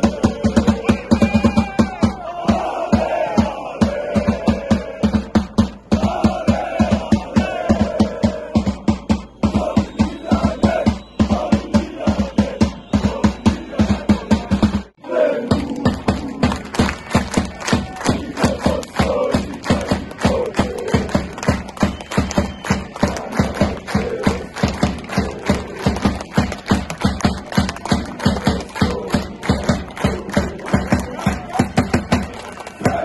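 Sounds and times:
football supporters chanting: 0.0 - 33.0.

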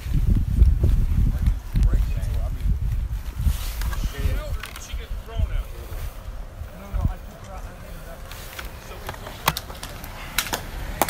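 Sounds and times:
steady low rumble: 0.0 - 11.0
distant people talking: 3.8 - 11.0.

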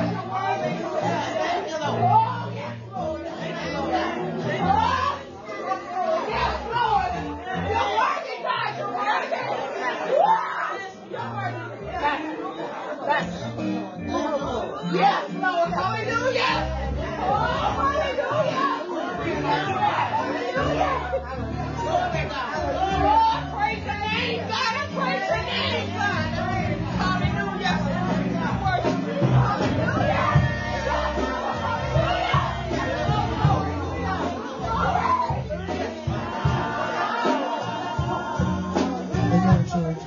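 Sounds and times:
background music: 0.0 - 8.7, 10.8 - 40.0
people talking: 0.0 - 40.0.

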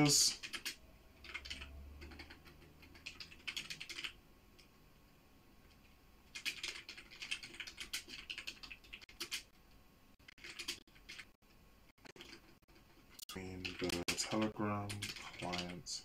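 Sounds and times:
computer keyboard typing: 0.0 - 4.7, 5.8 - 11.4, 12.0 - 15.9.

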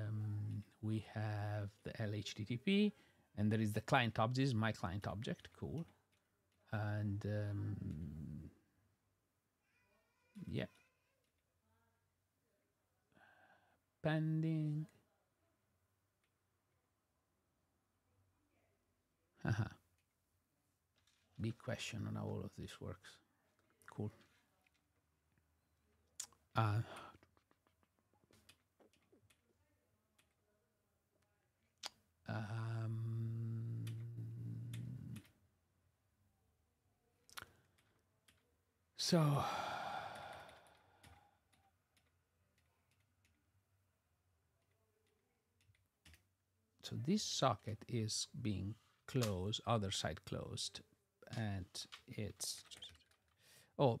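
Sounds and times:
man humming: 7.1 - 8.5, 32.3 - 35.3, 39.0 - 40.6.

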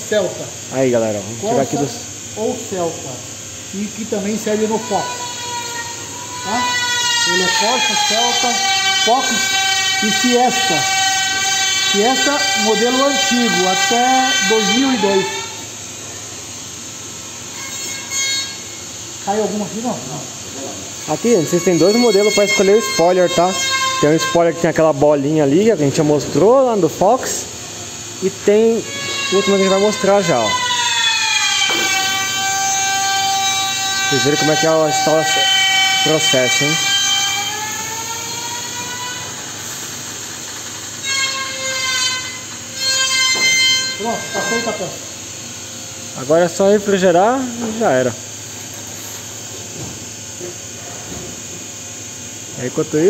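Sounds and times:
machine hissing: 0.0 - 53.0
high-pitched squeal: 3.8 - 16.2, 17.5 - 27.5, 28.2 - 45.1.

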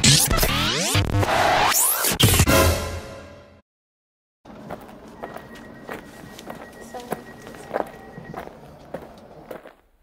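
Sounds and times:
footsteps walking: 4.5 - 10.0.

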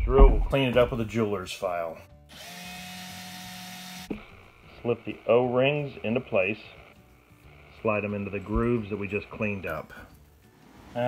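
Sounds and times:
electric drill running: 2.3 - 9.0.

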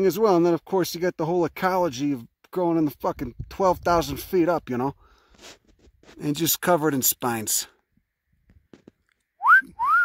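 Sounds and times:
two-note wolf whistle: 9.4 - 10.0.

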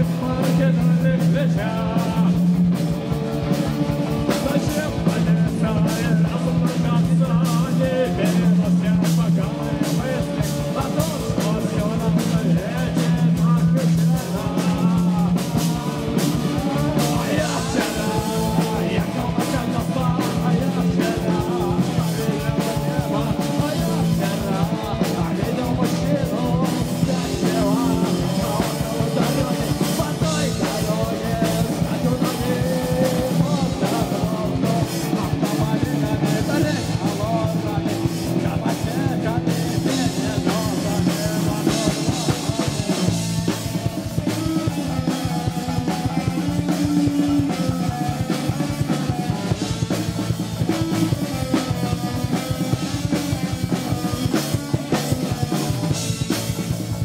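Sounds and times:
bass guitar: 0.0 - 57.0
drum kit: 0.0 - 57.0
electric guitar: 0.0 - 57.0
person singing: 0.0 - 57.0.

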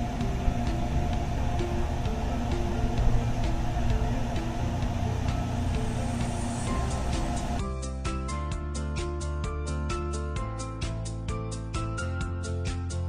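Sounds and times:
steady low rumble: 0.0 - 7.8
soft background melody: 0.0 - 13.0.

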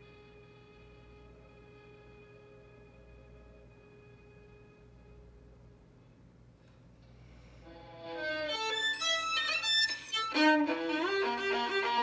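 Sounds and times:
solo violin bowed: 7.7 - 12.0.

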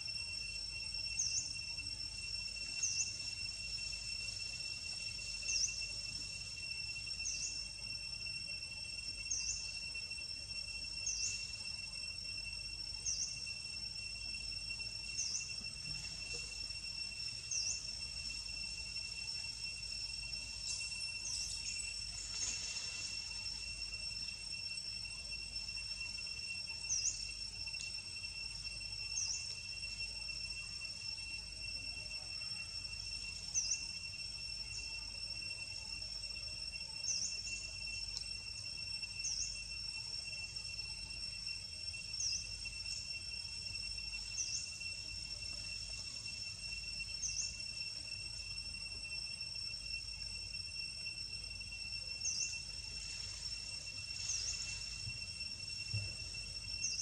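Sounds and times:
high-pitched insect trill: 0.0 - 57.0.

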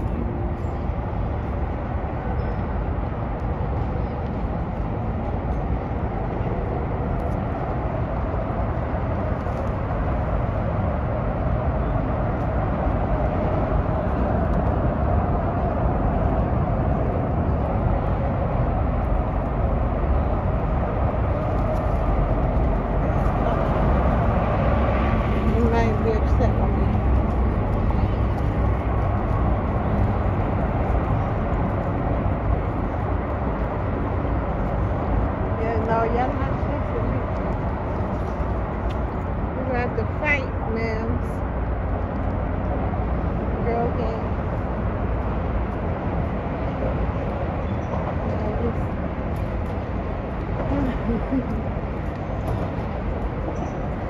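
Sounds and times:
road traffic rumble: 0.0 - 54.0.

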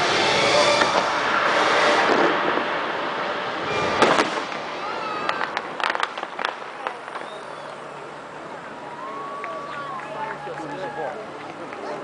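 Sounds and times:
fireworks rumble of bursts: 0.0 - 12.0
sharp firework bangs: 0.8 - 7.7.

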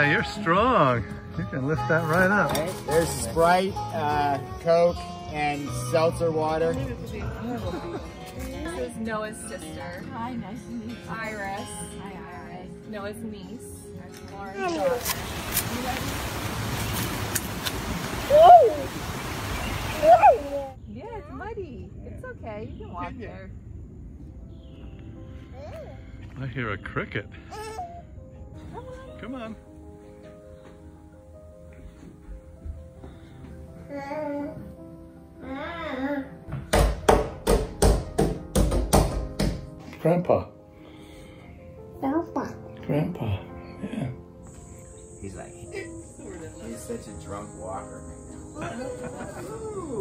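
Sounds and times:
steady rushing outdoor noise: 15.1 - 20.8.

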